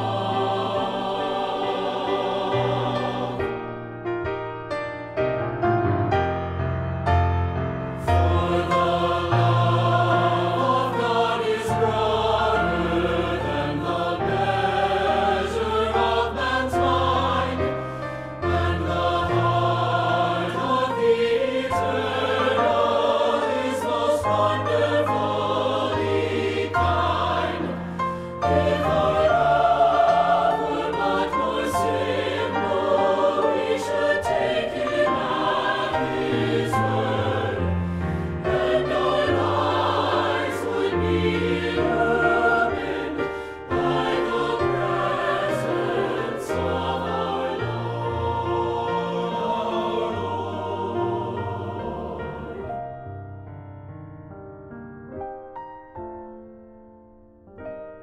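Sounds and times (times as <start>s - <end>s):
choir singing a hymn: 0.0s - 4.0s, 7.5s - 53.0s
piano accompaniment: 0.0s - 58.0s.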